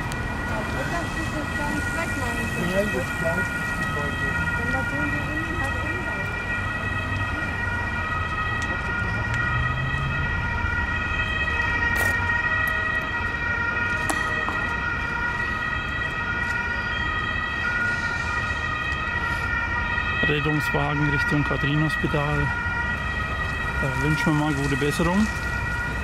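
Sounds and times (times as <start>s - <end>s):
ambulance siren: 0.0s - 26.0s.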